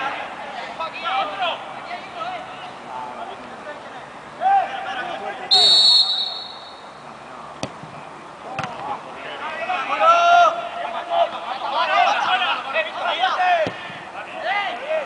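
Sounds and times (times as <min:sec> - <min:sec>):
players shouting: 0:00.0 - 0:03.2, 0:04.3 - 0:07.1, 0:08.5 - 0:15.0
referee's whistle: 0:05.5 - 0:07.0.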